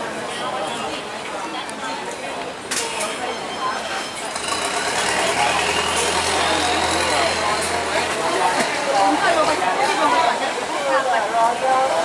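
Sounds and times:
voices chattering: 0:00.0 - 0:12.0
engine hum: 0:04.2 - 0:09.8.

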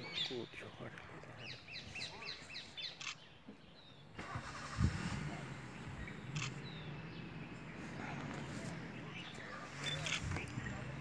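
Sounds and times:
vehicle engine starting: 0:04.1 - 0:11.0.

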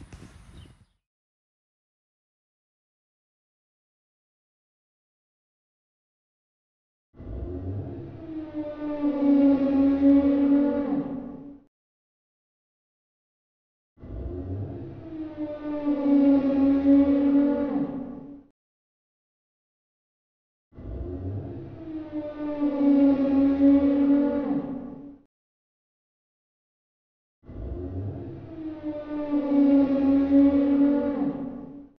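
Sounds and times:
deep dinosaur roar: 0:07.2 - 0:11.6, 0:14.0 - 0:18.4, 0:20.8 - 0:25.2, 0:27.4 - 0:31.9.

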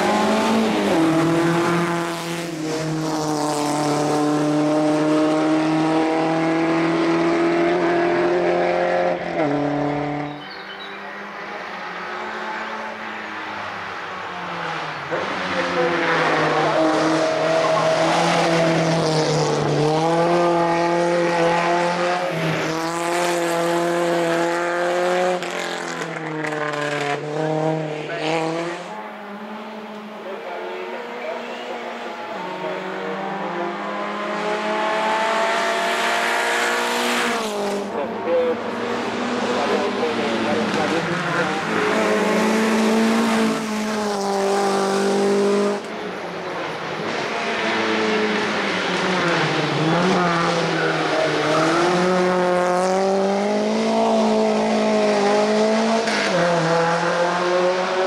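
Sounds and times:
race car engine revving: 0:00.0 - 0:58.0.

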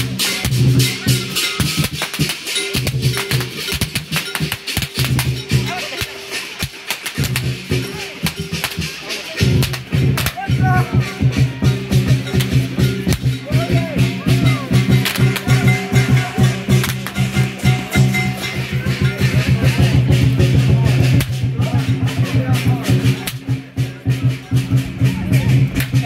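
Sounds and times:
big drum beaten fast: 0:00.0 - 0:26.0
crashing cymbals: 0:00.0 - 0:26.0.

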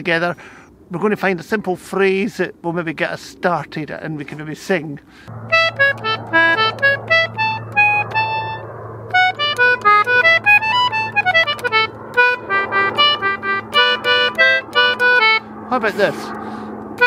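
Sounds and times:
concertina melody over drone: 0:05.3 - 0:17.0.

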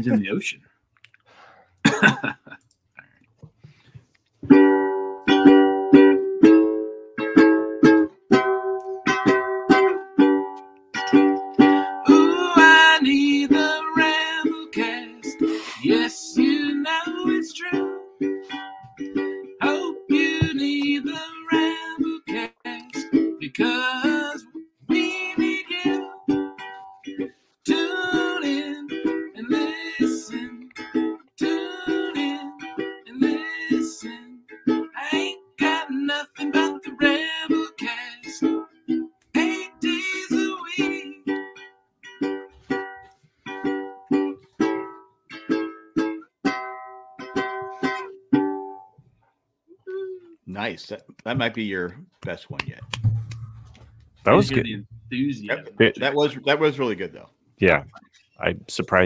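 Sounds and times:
plucked string strumming: 0:04.4 - 0:48.9, 0:52.6 - 0:57.0
man singing: 0:12.1 - 0:18.0, 0:19.6 - 0:26.2, 0:27.6 - 0:30.7, 0:31.4 - 0:34.4, 0:35.0 - 0:38.5, 0:39.4 - 0:41.2.

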